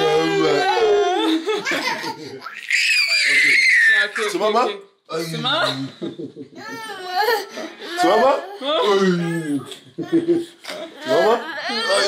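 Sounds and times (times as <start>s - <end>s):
toddler crying: 0.0s - 4.3s, 6.6s - 10.3s, 11.0s - 12.0s.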